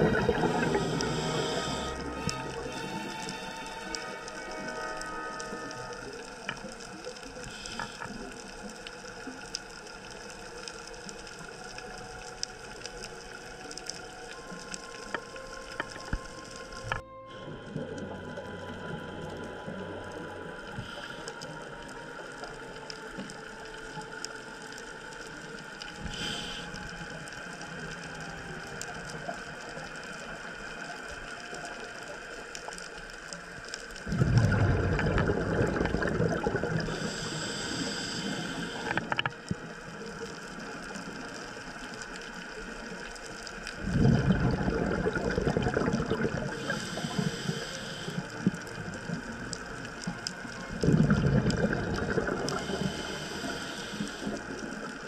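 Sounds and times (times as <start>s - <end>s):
diver exhaling bubbles: 0.0s - 3.1s, 34.1s - 39.4s, 43.8s - 47.1s, 50.7s - 54.6s
regulator inhalation hiss: 0.4s - 4.3s, 26.0s - 27.2s, 36.7s - 39.2s, 46.4s - 48.9s, 52.4s - 54.8s.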